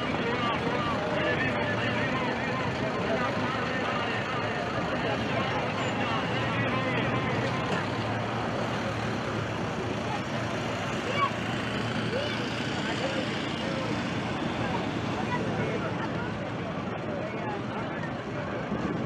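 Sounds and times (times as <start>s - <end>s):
crowd voices talking: 0.0s - 19.0s
road traffic: 0.0s - 19.0s.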